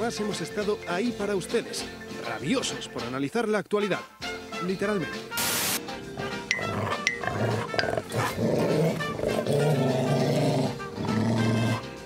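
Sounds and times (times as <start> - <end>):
music: 0.0 - 12.0.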